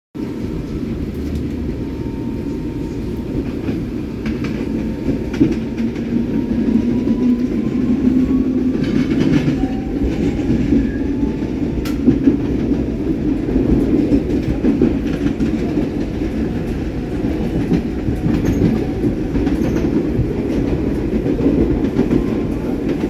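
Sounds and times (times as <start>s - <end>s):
train rumble: 0.2s - 23.0s
wheels clacking on rails: 0.6s - 23.0s.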